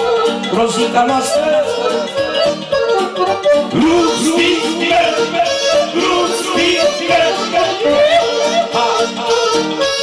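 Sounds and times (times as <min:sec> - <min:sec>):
accordion: 0:00.0 - 0:10.0
man singing wordless notes: 0:00.4 - 0:02.8, 0:03.6 - 0:10.0.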